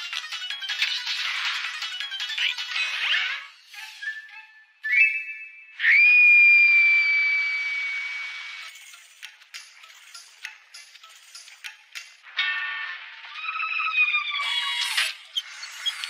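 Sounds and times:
high sliding whistle: 0:03.8 - 0:08.6.

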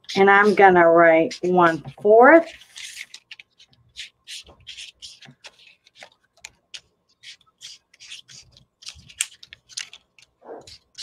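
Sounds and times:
marker scratching on paper: 0:00.0 - 0:06.1, 0:07.1 - 0:09.2, 0:10.4 - 0:11.0.

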